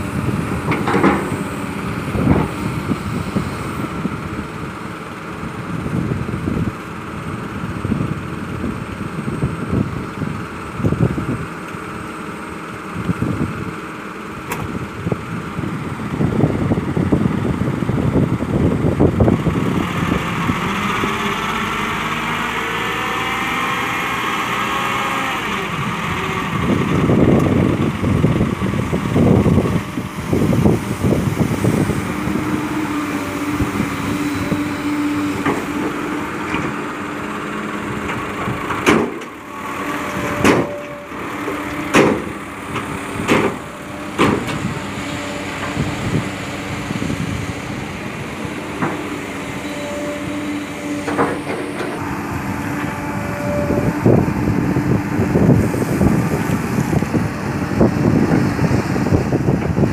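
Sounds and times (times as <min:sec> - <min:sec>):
diesel engines running: 0:00.0 - 0:59.9
truck engine humming: 0:00.0 - 0:59.9
hydraulic whines: 0:18.8 - 0:59.9.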